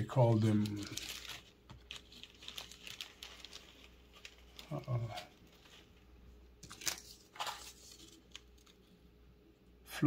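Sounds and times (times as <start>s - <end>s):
faint crinkling: 0.1s - 9.2s.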